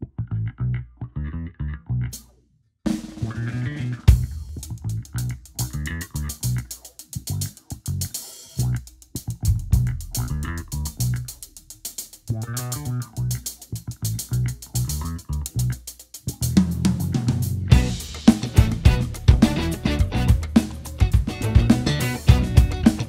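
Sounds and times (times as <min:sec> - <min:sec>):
bass line: 0:00.0 - 0:02.2, 0:02.9 - 0:23.0
drum kit: 0:02.9 - 0:23.0
guitar: 0:03.2 - 0:06.7, 0:16.3 - 0:23.0
crash cymbal and kick drum: 0:04.1 - 0:07.4, 0:17.7 - 0:23.0.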